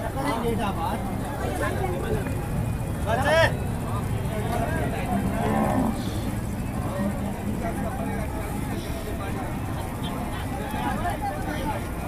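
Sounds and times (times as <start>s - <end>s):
crowd noise: 0.0s - 12.0s
cow mooing: 5.2s - 6.3s.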